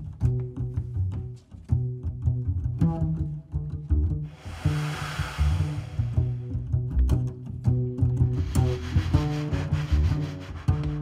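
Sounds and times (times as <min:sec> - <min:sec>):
plucked double bass: 0:00.0 - 0:11.0
drum kit hiss: 0:04.3 - 0:06.6.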